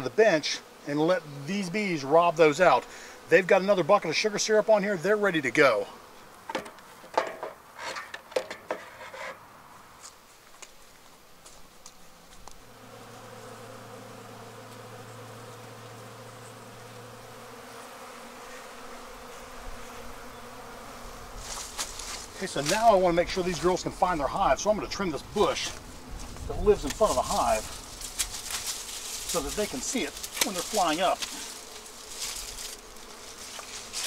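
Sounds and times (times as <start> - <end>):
honeybees buzzing: 0.0 - 7.8, 8.7 - 34.0.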